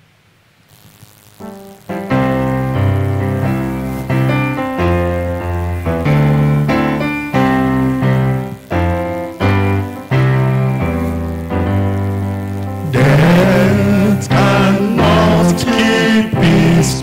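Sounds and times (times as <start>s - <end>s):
keyboard playing hymn chords: 1.4s - 17.0s.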